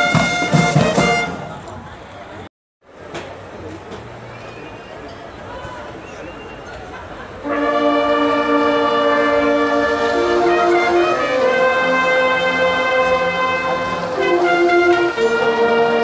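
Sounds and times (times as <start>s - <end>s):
brass marching band chords: 0.0s - 1.6s, 7.4s - 16.0s.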